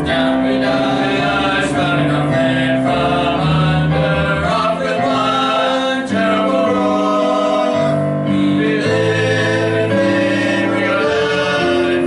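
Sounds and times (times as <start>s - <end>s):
men singing in harmony: 0.0s - 12.0s.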